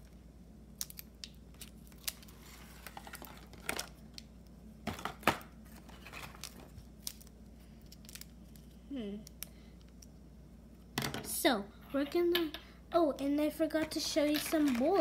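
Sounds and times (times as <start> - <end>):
plastic packet crinkling: 14.3 - 15.0.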